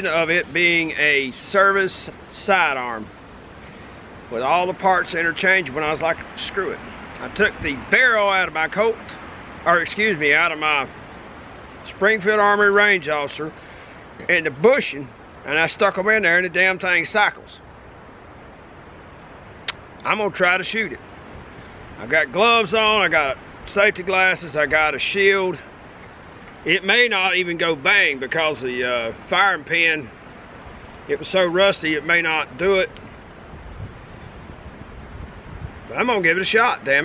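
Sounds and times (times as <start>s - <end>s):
outdoor background hiss: 0.0s - 37.0s
wind noise on microphone: 3.0s - 9.8s, 20.7s - 27.1s, 30.1s - 37.0s
person speaking: 20.0s - 21.0s, 22.0s - 25.7s, 26.6s - 30.1s, 35.9s - 37.0s.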